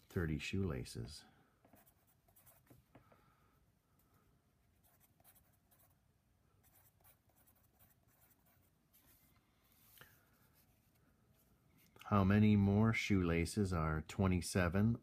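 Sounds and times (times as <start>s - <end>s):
pencil scratching on paper: 1.6s - 2.8s, 4.7s - 6.0s, 6.6s - 9.2s.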